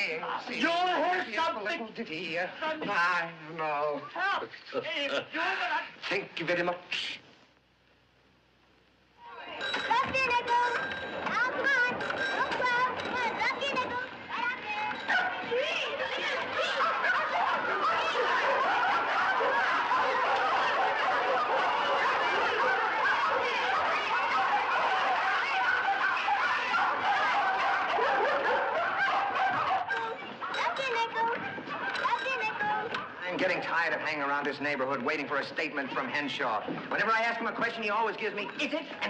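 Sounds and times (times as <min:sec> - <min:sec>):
group of people laughing: 0:15.5 - 0:30.3.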